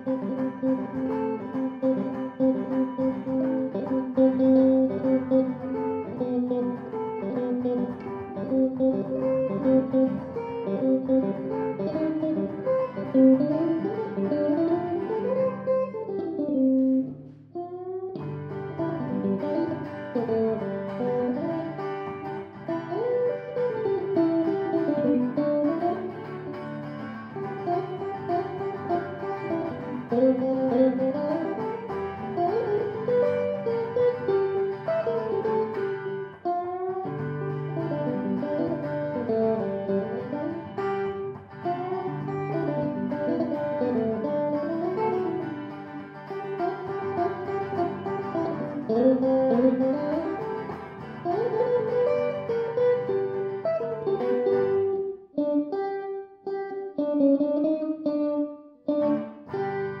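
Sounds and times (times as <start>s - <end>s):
guitar duet: 0.0s - 60.0s.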